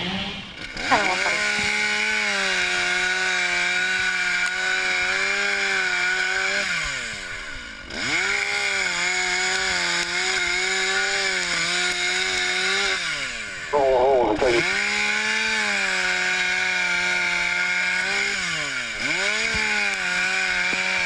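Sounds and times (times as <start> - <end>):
gas-powered saw running: 0.0 - 21.0.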